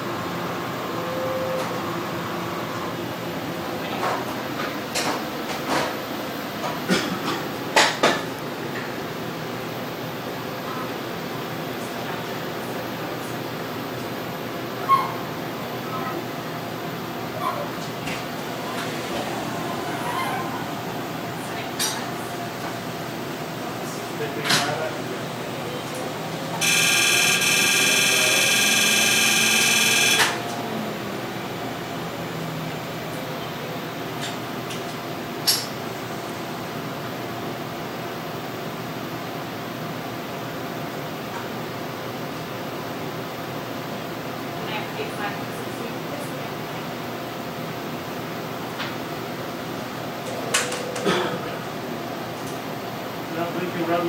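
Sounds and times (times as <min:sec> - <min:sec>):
fans humming: 0:08.4 - 0:38.4
short beep: 0:26.6 - 0:30.5
high-pitched electronic buzzing tone: 0:26.6 - 0:30.6.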